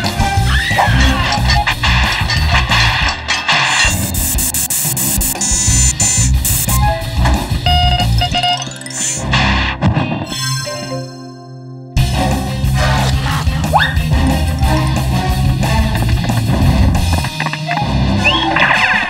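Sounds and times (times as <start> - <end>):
guitar-led cartoon music: 0.0 - 19.0
noisy sound-effect bursts: 1.6 - 6.8.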